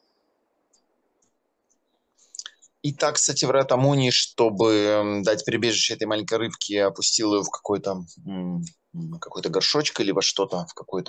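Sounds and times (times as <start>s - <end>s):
person speaking: 2.2s - 11.0s.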